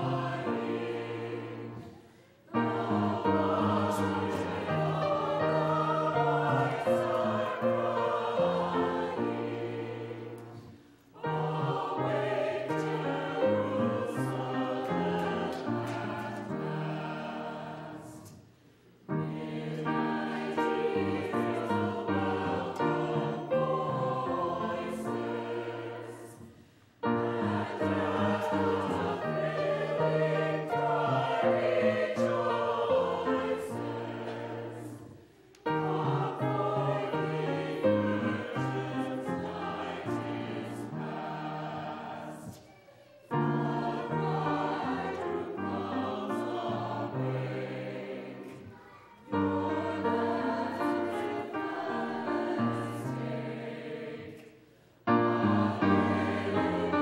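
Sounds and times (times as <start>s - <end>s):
grand piano accompaniment: 0.0s - 42.5s, 43.3s - 57.0s
choir singing slow anthem: 0.0s - 57.0s.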